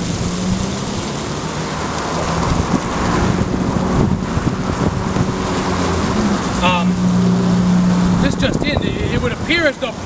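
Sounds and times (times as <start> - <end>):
street traffic: 0.0 - 10.0
wind on microphone: 2.2 - 9.5.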